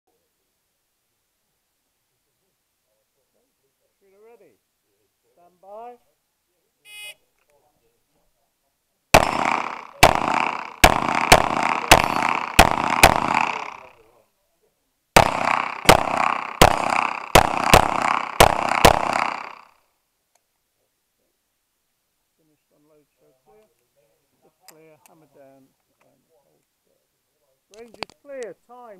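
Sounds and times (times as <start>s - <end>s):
rapid gunshots with echo: 9.2s - 14.0s, 15.2s - 19.8s.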